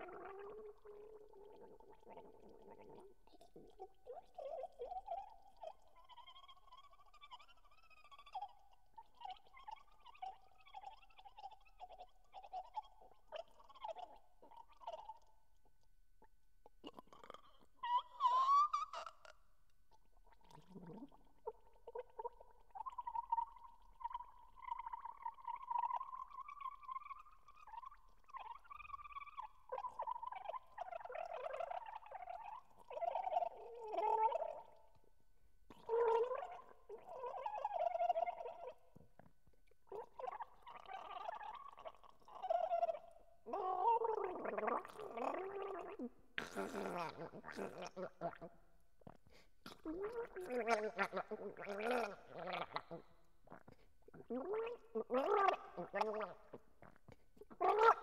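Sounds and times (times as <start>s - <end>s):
person gargling: 16.8s - 18.0s, 41.5s - 48.5s, 49.1s - 58.0s.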